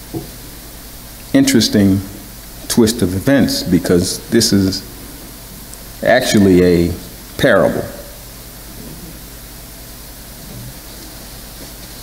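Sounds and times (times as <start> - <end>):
room tone hiss and hum: 0.0 - 12.0.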